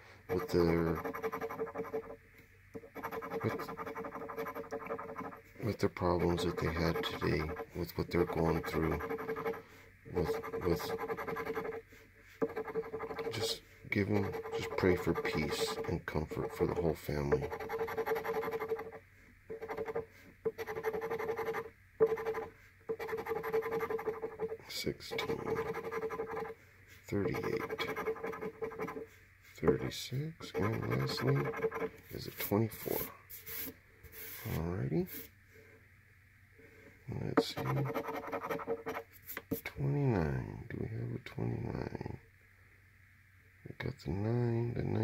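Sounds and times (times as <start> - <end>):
coin scratching lottery ticket: 0.3 - 2.2, 2.8 - 5.4, 6.0 - 9.6, 10.2 - 11.8, 12.4 - 16.7, 17.4 - 26.5, 27.2 - 29.0, 30.4 - 34.6, 37.4 - 39.4
coin scraping scratch-off ticket: 20.6 - 24.5, 30.4 - 33.7.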